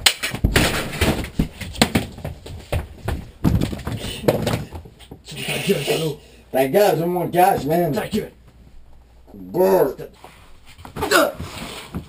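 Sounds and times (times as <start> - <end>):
bodies thumping and knocking: 0.0 - 5.3, 7.4 - 8.3.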